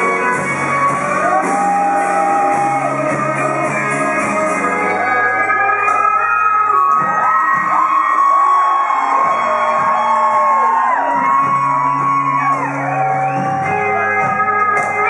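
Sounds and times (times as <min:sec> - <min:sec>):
people shouting and whooping: 0:00.9 - 0:03.2, 0:05.0 - 0:14.6.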